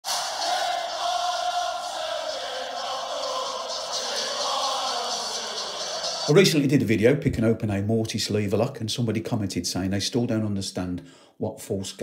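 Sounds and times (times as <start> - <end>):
crowd-like roar: 0.0 - 6.3
music: 0.0 - 6.8.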